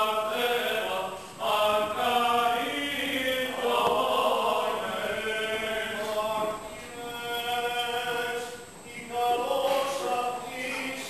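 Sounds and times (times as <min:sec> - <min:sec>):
liturgical chanting: 0:00.0 - 0:11.0.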